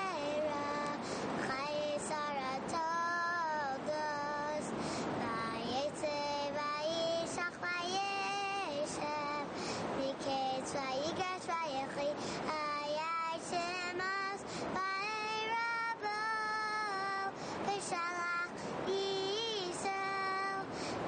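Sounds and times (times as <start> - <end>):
child singing: 0.0 - 20.7.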